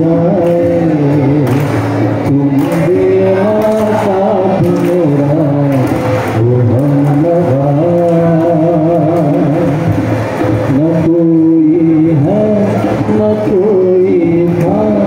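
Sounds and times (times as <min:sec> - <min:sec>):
man singing: 0:00.0 - 0:15.0.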